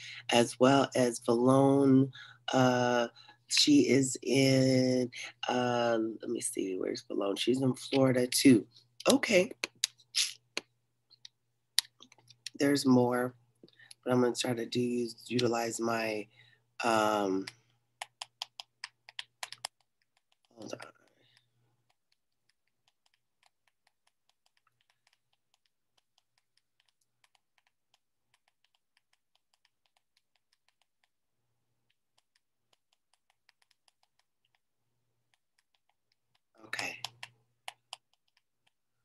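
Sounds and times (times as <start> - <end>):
computer keyboard typing: 17.4 - 31.2, 31.9 - 34.6, 35.3 - 38.8.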